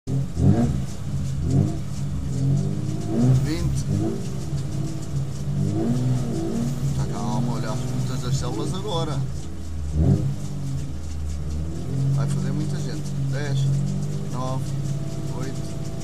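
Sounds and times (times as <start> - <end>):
engine throttle blips: 0.1 - 16.0
rally car engine idling: 0.1 - 16.0.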